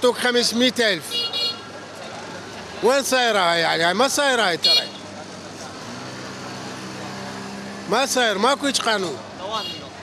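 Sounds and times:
street market traffic: 0:00.0 - 0:10.0.

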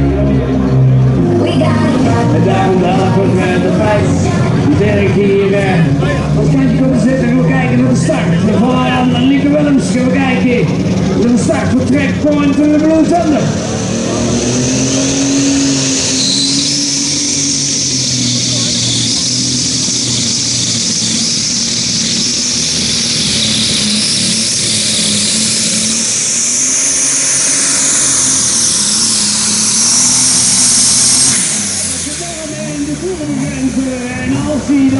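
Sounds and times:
tractor engine running flat out: 0:00.0 - 0:34.9
announcer speaking: 0:01.2 - 0:13.6, 0:32.0 - 0:34.9
high whistle: 0:13.6 - 0:32.8.

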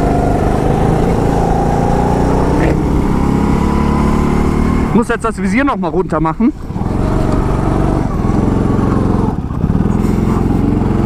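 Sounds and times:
go-kart engine revving high: 0:00.0 - 0:05.2, 0:06.6 - 0:11.0.

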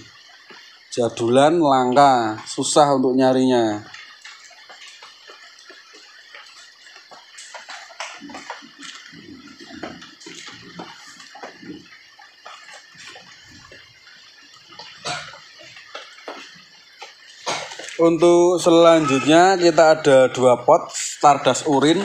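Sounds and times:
rustling of potted plants: 0:03.3 - 0:22.0.

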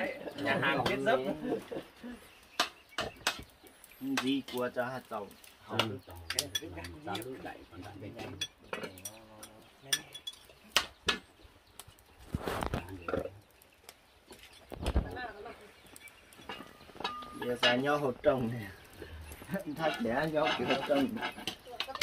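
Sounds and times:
dishes clinking on metal tray: 0:06.3 - 0:07.3, 0:08.2 - 0:10.5, 0:16.4 - 0:18.0, 0:19.7 - 0:22.0.

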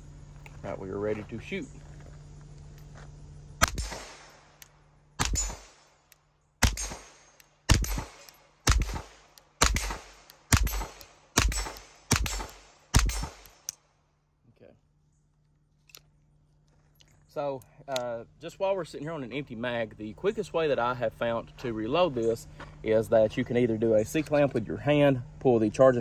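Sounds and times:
pistol shots: 0:03.6 - 0:04.6, 0:05.2 - 0:06.0, 0:06.6 - 0:13.8.

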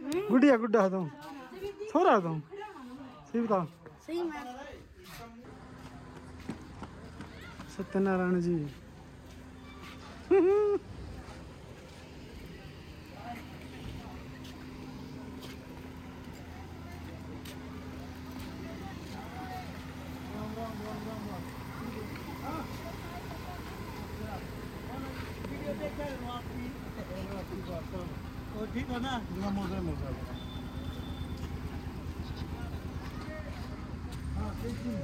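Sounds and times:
car engine idling: 0:11.4 - 0:35.0.

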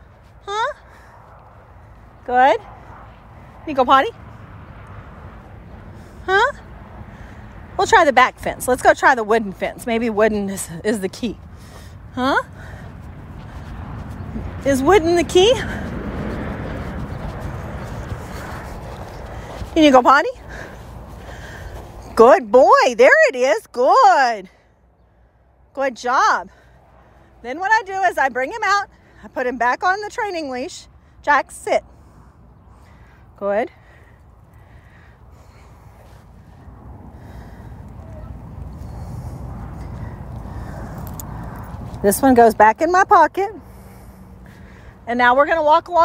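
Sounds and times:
wind buffeting microphone: 0:00.0 - 0:22.5, 0:31.9 - 0:46.0.

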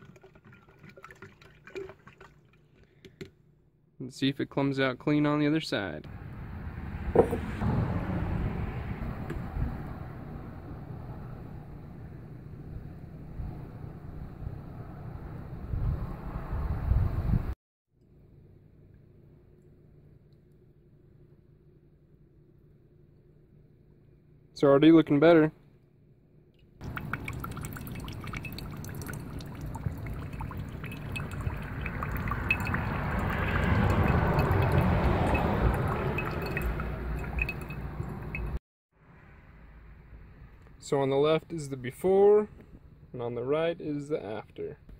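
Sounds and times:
water trickling into glass bowl: 0:00.0 - 0:02.7, 0:26.8 - 0:38.6
wind rumbling on microphone: 0:06.1 - 0:12.1, 0:12.8 - 0:17.6.

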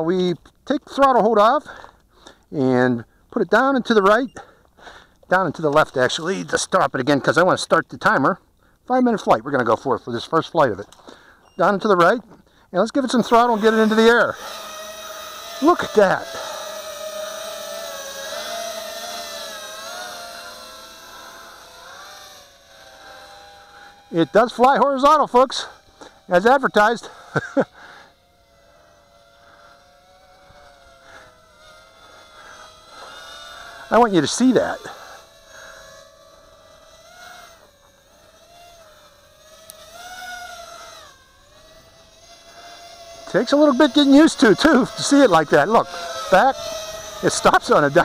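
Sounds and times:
drone motors whining: 0:01.0 - 0:07.8, 0:09.0 - 0:48.0.

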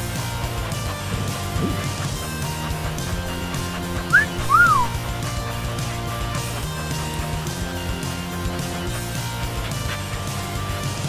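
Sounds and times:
background music: 0:00.0 - 0:11.0
whistled notes: 0:04.0 - 0:05.3.

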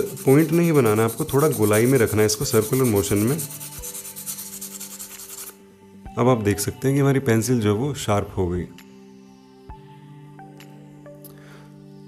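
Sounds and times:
charcoal rubbing on sandpaper: 0:00.0 - 0:05.6.

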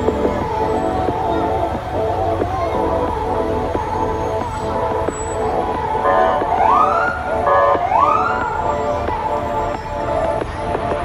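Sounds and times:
siren rising whoops: 0:00.0 - 0:11.0
siren blast: 0:05.2 - 0:09.8.

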